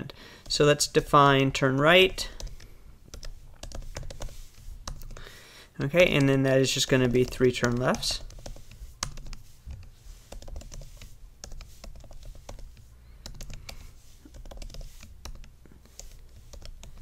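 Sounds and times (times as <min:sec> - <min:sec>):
keyboard typing clicks: 0:07.0 - 0:17.0.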